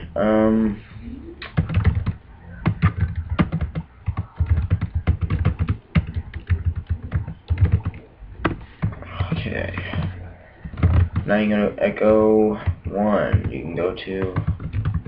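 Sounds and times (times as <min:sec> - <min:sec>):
computer keyboard typing: 0:01.4 - 0:11.5, 0:12.5 - 0:15.0.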